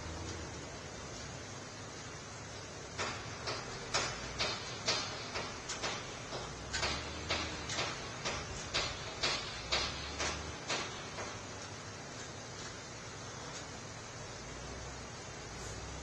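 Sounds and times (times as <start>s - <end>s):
steady hiss: 0.0s - 16.0s
sharp clicks or knocks: 3.0s - 11.4s.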